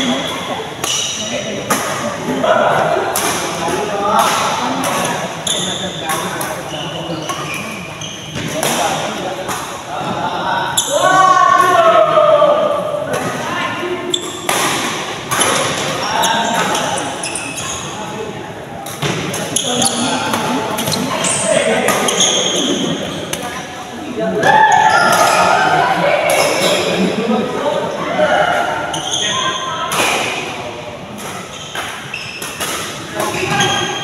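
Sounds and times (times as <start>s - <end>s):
players' voices echoing: 0.0s - 34.0s
racket hitting shuttlecock: 0.8s - 2.1s, 2.7s - 5.2s, 8.4s - 9.8s, 14.2s - 16.9s, 18.8s - 23.5s, 31.2s - 34.0s.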